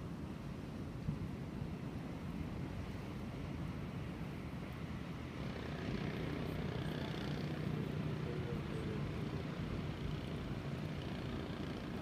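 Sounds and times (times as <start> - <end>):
barge engine drone: 4.7 - 12.0.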